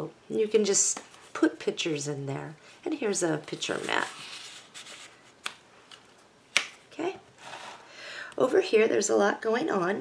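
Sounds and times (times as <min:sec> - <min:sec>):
cardstock sliding against paper: 0:07.4 - 0:07.9.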